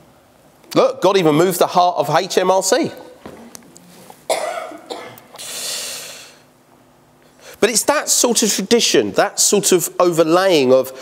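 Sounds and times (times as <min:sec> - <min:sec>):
person coughing: 0:04.3 - 0:05.4
breathy rush of air: 0:05.4 - 0:06.5.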